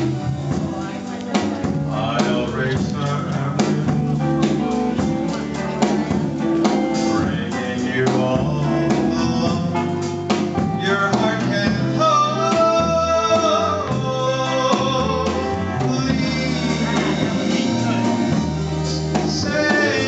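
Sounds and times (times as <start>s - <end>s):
live country band playing: 0.0s - 20.0s
man singing: 0.0s - 20.0s.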